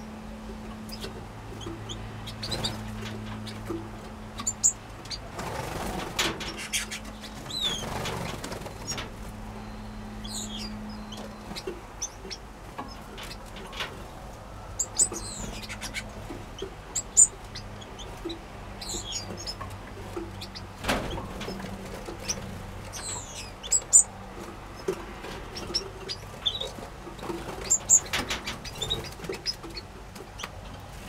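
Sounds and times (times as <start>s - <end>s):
finches chirping: 4.3s - 5.3s, 6.5s - 13.5s, 14.8s - 19.6s, 22.2s - 24.2s, 27.5s - 30.5s
clicks of birds landing: 5.1s - 9.3s
wing flutters: 5.3s - 9.4s.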